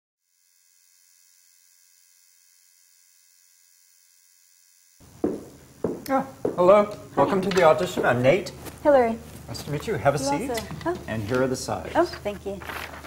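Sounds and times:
high-pitched electrical hum: 0.3s - 13.0s.

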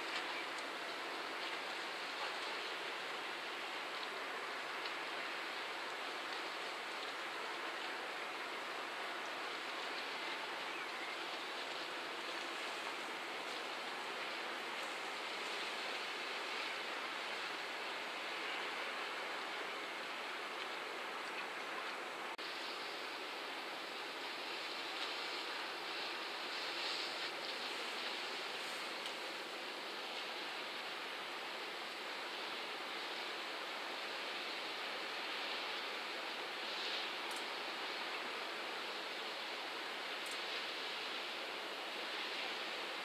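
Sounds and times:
outdoor ambient hiss: 0.0s - 43.0s.

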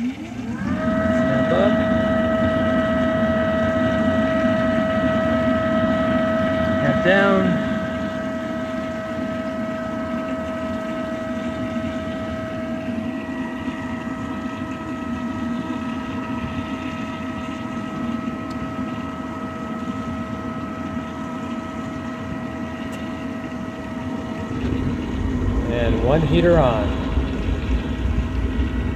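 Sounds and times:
pool motor humming and whining: 0.0s - 28.9s.

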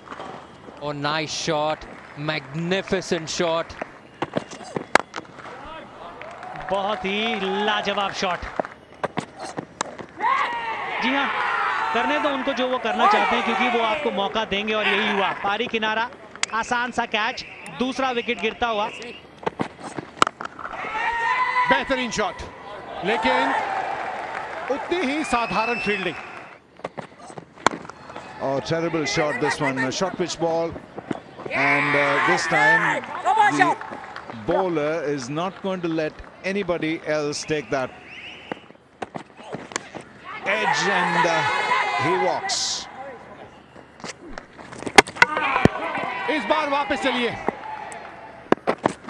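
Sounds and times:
cricket ball hitting stumps: 3.8s - 5.6s, 44.0s - 45.8s
cricket bat striking ball: 44.9s - 45.8s.

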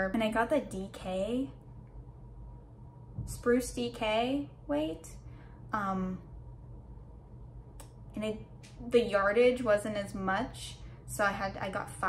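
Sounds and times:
woman speaking: 0.0s - 1.6s, 3.2s - 6.3s, 8.1s - 12.0s
low room hum: 0.0s - 12.0s.

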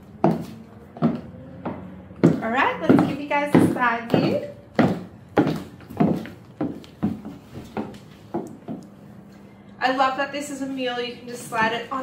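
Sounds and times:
high heels clacking on wooden floor: 0.0s - 8.9s.

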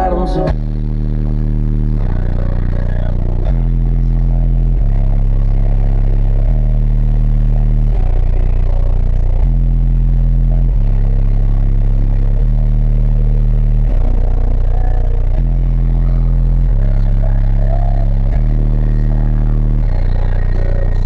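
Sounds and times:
loud bass-heavy music: 0.0s - 21.0s.

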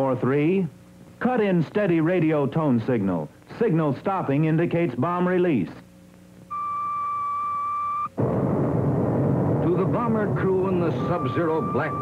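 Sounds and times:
steady radio tone: 9.7s - 12.0s.

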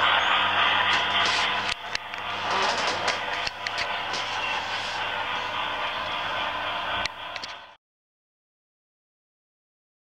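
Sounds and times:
model train motor hum: 0.0s - 7.8s
continuous rattling: 0.2s - 6.6s.

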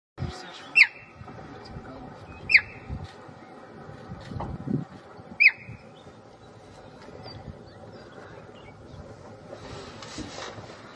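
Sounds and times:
cheetah chirping: 0.6s - 1.2s, 2.2s - 3.0s, 5.2s - 9.1s.

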